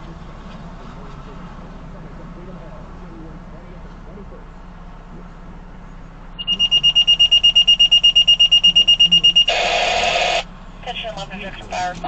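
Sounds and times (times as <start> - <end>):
rapid high beeps: 6.4 - 10.4
dispatcher's voice over radio: 8.4 - 12.0
radio static burst: 9.5 - 12.0.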